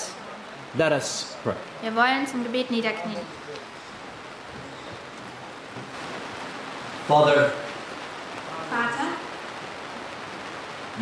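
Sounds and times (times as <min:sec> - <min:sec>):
rain falling: 0:00.0 - 0:11.0.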